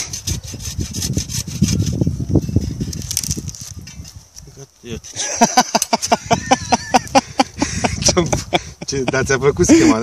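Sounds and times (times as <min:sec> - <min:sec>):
hand saw cutting branch: 0:00.0 - 0:04.1.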